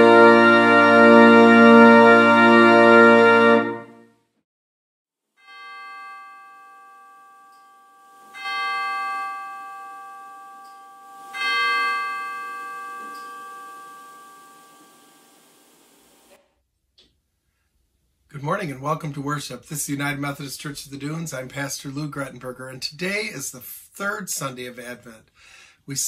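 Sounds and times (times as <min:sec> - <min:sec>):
bell ringing: 0:05.4 - 0:16.3.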